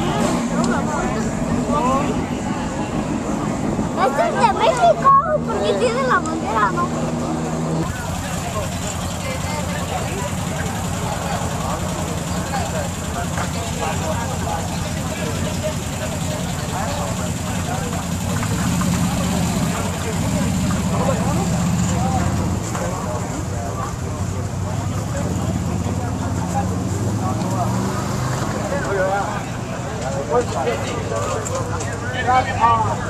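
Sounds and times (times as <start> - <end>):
crowd chatter: 0.0 - 33.0
race truck engine idling: 0.0 - 33.0.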